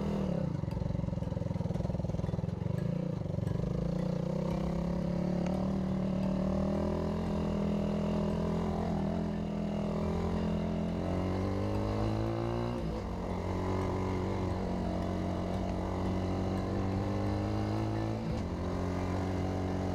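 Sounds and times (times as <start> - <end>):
motorcycle engine running: 0.0 - 19.9.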